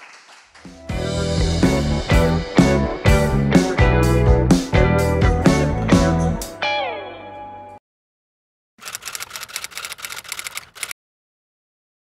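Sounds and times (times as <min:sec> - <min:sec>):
keyboard typing clicks: 0:08.8 - 0:11.0.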